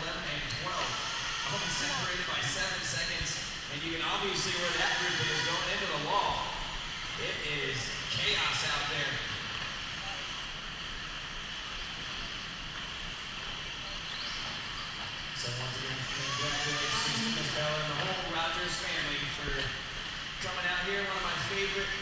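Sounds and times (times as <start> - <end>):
person talking: 15.4 - 19.7.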